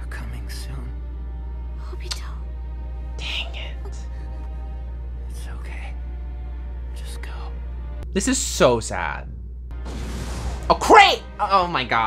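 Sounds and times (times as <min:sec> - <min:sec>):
soft background music: 0:00.0 - 0:12.0
low hum: 0:01.2 - 0:10.8.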